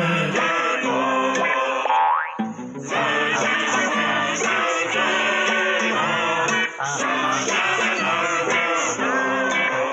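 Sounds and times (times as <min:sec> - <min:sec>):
song music: 0:02.4 - 0:09.3.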